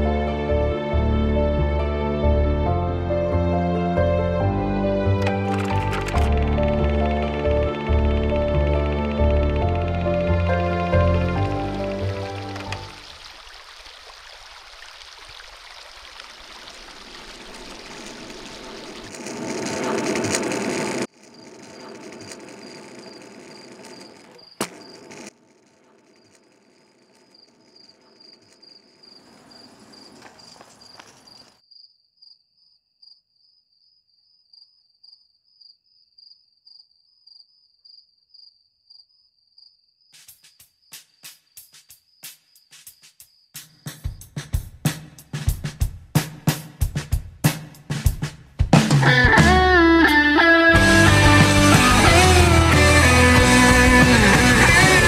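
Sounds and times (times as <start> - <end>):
intro music: 0.0 - 12.9, 50.8 - 55.0
sharp evenly spaced clicks: 5.2 - 12.9
high pulsing cricket chirp: 21.1 - 25.3, 25.9 - 44.4.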